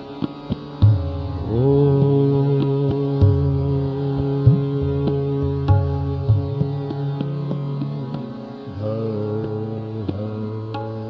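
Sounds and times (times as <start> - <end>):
tabla strokes: 0.0 - 11.0
classical singing voice: 1.4 - 11.0.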